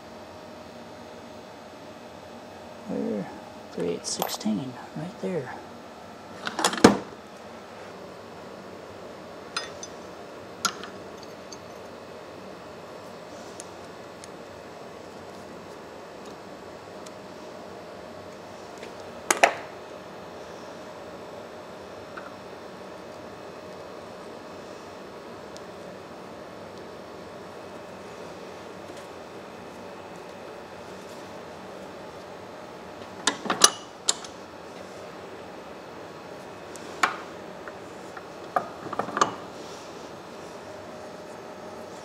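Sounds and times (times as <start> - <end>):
low background hum: 0.0 - 42.0
metal tools clinking: 4.1 - 4.5.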